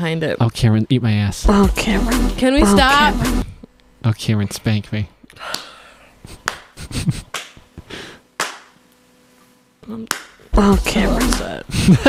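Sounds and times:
faint steady hum: 0.2s - 12.0s.

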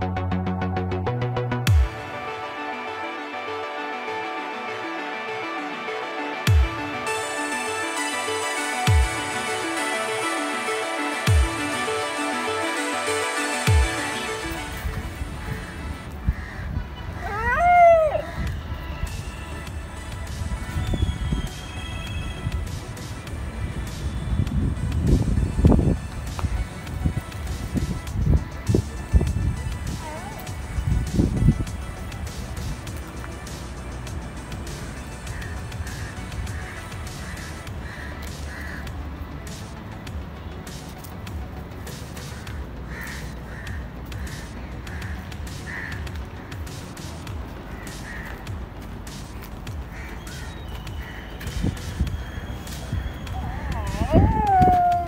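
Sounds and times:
background music: 0.0s - 55.0s
crow cawing: 15.4s - 18.6s, 35.1s - 39.0s, 42.2s - 46.8s, 47.7s - 48.6s, 49.7s - 55.0s.

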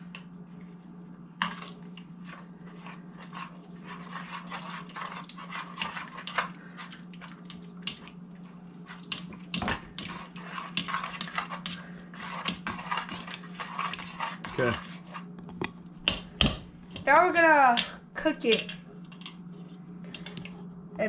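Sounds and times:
steady low hum: 0.0s - 21.0s
spoon stirring meat in a bowl: 1.4s - 19.4s.

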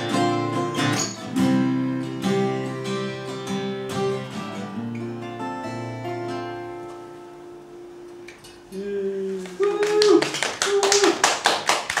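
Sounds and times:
held voice: 8.7s - 11.2s
people clapping: 9.4s - 12.0s.

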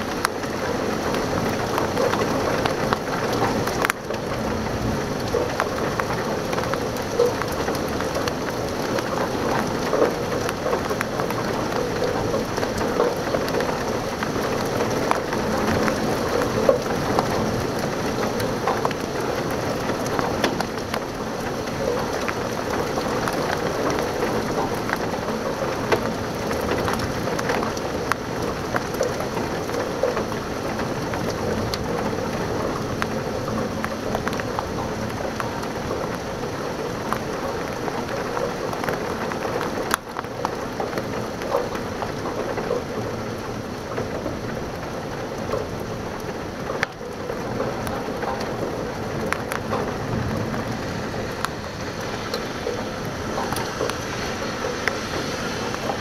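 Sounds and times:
heavy rain: 0.0s - 56.0s
raindrops tapping on window glass: 0.0s - 56.0s.

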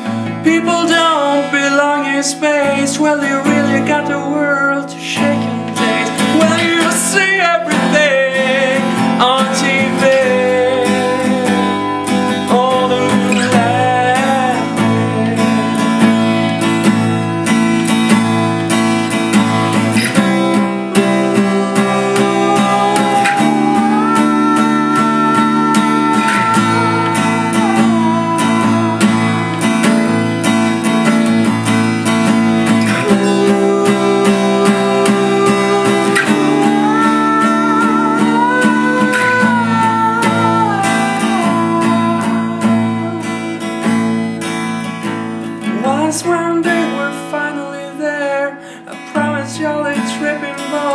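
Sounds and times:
man singing: 0.0s - 16.7s, 19.3s - 44.0s, 45.5s - 50.9s
acoustic guitar strummed: 0.0s - 50.9s.

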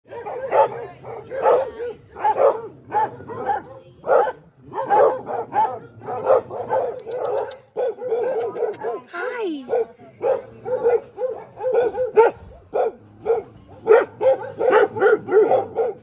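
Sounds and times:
dogs barking: 0.1s - 16.0s.

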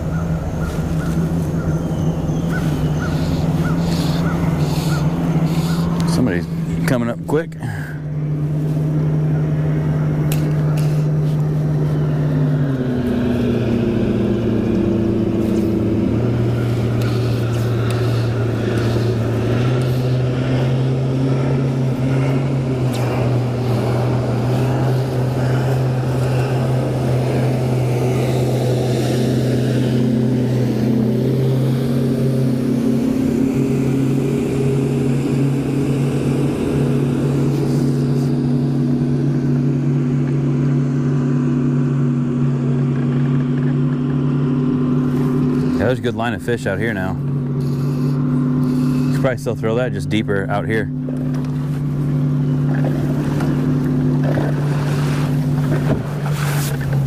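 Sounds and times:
electric motor whining: 8.0s - 40.4s.

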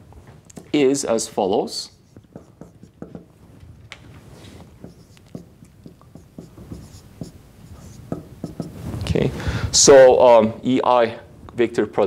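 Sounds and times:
marker pen scratching on whiteboard: 1.8s - 3.4s, 4.3s - 9.0s.

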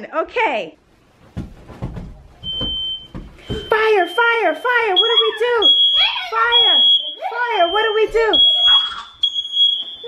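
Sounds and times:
soft low thumps: 0.9s - 4.0s
smoke alarm shrill tone: 2.5s - 10.0s.

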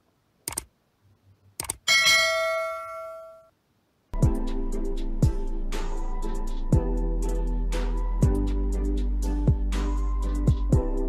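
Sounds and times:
bright bell ding: 1.9s - 3.5s.

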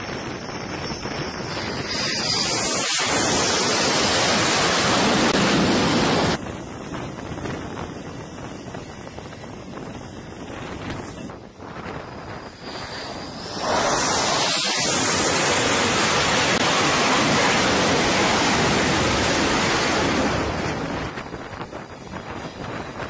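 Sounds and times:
jet engine whine and roar: 0.0s - 23.0s.

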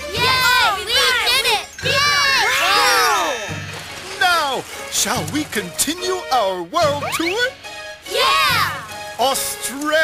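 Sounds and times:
cartoon children cheering: 0.2s - 3.5s, 8.1s - 8.9s.

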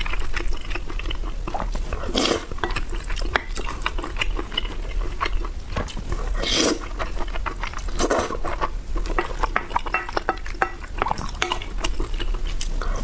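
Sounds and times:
wet chewing: 0.0s - 13.0s.

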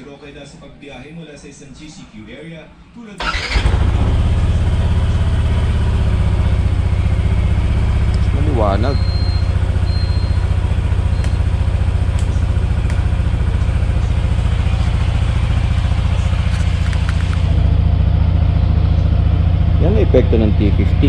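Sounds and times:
scooter engine idling: 3.2s - 21.0s.

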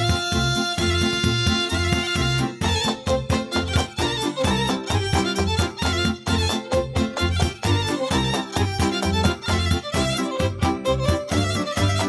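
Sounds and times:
fiddle playing folk dance tune: 0.0s - 12.0s
pulsing rhythmic accompaniment: 0.0s - 12.0s.

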